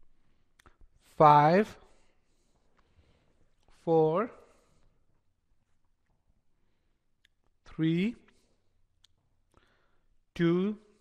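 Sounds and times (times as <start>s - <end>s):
man speaking: 1.0s - 2.0s, 3.7s - 4.7s, 7.6s - 8.5s, 10.3s - 11.0s.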